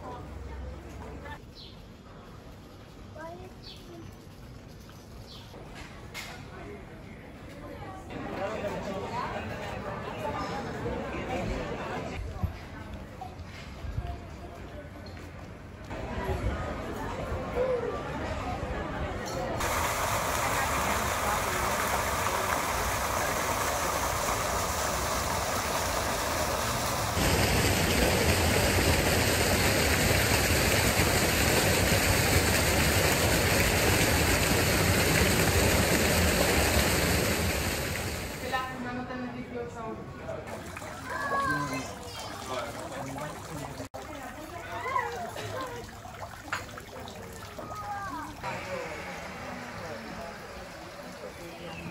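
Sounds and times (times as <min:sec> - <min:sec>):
fountain water splashing: 0:19.6 - 0:38.7, 0:40.4 - 0:51.9.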